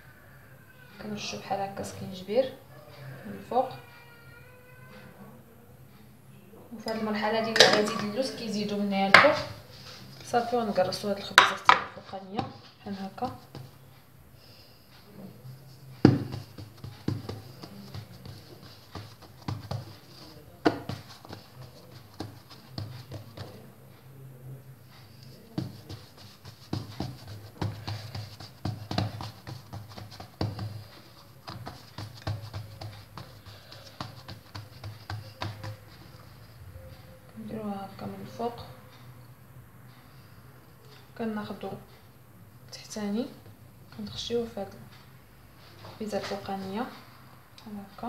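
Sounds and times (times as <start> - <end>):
hands patting dough: 9.1 - 13.8, 15.7 - 23.7, 25.0 - 36.6
knock on stone counter: 11.4 - 12.0, 16.1 - 16.4.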